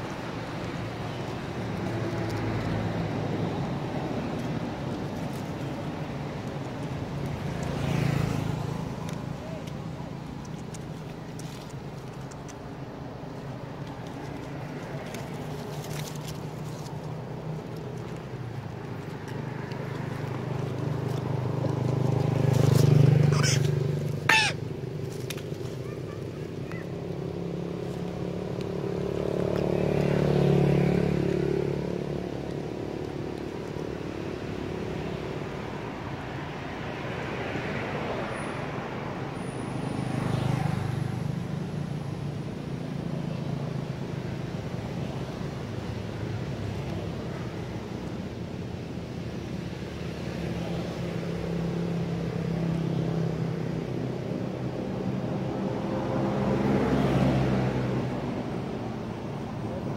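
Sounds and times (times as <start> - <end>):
motor vehicles passing: 0.0 - 59.9.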